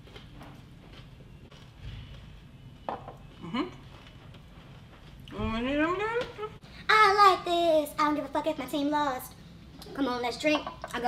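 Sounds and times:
woman murmuring mm: 3.4s - 3.8s.

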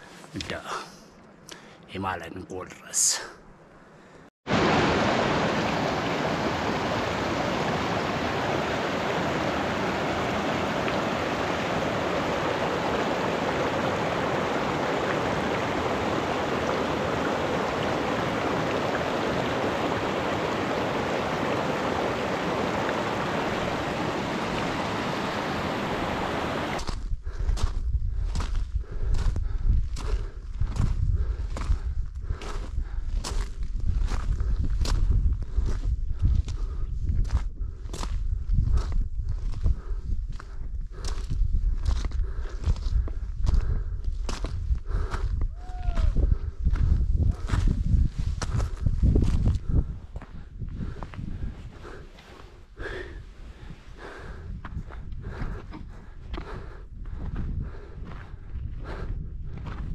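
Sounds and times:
stream rushing over rocks: 4.5s - 26.8s.

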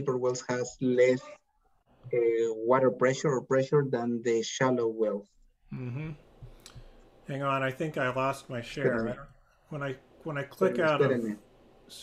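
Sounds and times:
person talking over video call: 0.0s - 12.0s.

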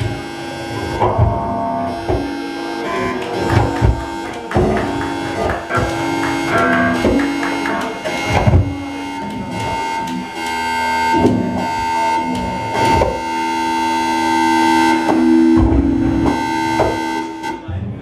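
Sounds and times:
droning electronic tones: 0.0s - 18.0s
room chatter: 0.0s - 18.0s
low thuds: 15.0s - 17.2s.

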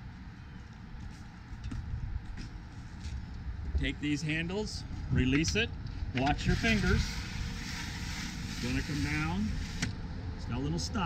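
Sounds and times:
wind rumble on microphone: 1.6s - 2.5s, 3.2s - 10.7s.

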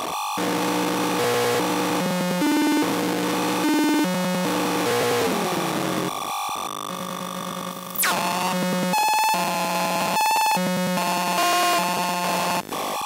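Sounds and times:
buzzy square-wave synthesizer tones: 0.4s - 12.7s.

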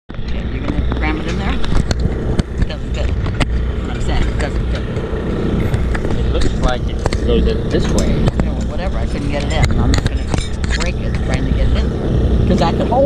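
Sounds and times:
steady low rumble: 0.1s - 13.0s
voices: 0.1s - 13.0s.

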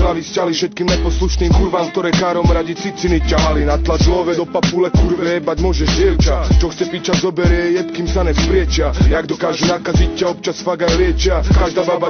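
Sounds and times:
rapping over a beat: 0.0s - 12.0s
deep bass and kick drums: 0.9s - 1.7s, 2.4s - 2.6s, 3.2s - 4.3s, 5.0s - 6.7s, 7.5s - 9.2s, 10.0s - 10.2s, 10.9s - 11.7s.

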